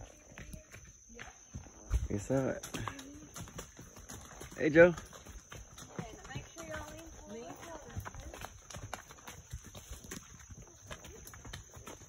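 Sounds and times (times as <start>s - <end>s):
horse hooves clopping on dirt: 0.0s - 12.0s.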